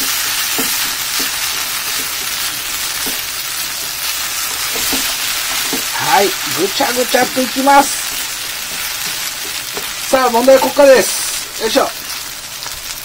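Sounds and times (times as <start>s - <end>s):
food sizzling in a frying pan: 0.0s - 13.0s.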